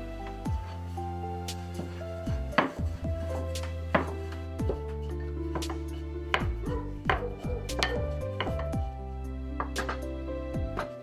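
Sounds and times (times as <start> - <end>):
background music: 0.0 - 11.0
rolling pin knocking on wooden board: 1.8 - 8.8.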